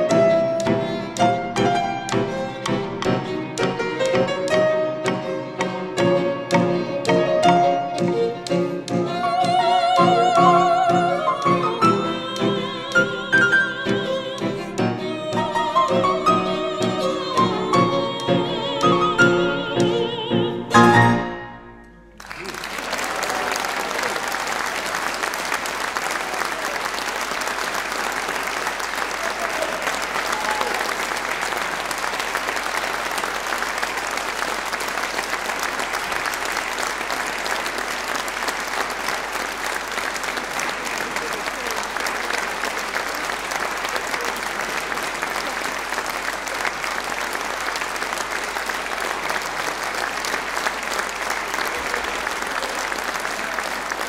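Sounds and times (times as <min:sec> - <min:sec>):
audience applauding: 0:00.0 - 0:19.4, 0:22.1 - 0:54.0.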